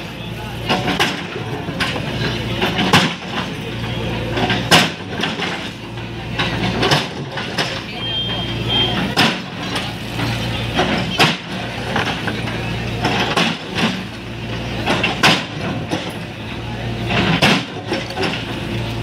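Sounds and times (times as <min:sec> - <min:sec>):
diesel engine running: 0:00.0 - 0:19.0.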